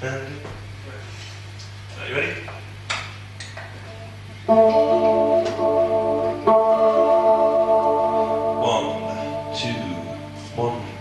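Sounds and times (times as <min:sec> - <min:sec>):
low amplifier hum: 0:00.0 - 0:11.0
electric guitar chord ringing: 0:04.4 - 0:11.0.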